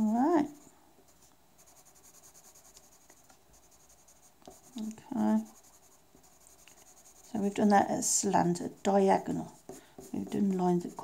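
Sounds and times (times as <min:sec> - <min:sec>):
pencil scratching on paper: 0:01.2 - 0:11.0.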